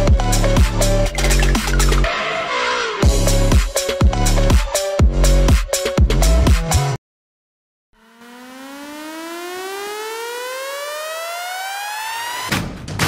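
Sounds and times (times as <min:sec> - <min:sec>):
electronic music with hard drums: 0:00.0 - 0:07.0, 0:08.0 - 0:12.8
buzzy synthesized riser: 0:08.0 - 0:12.5.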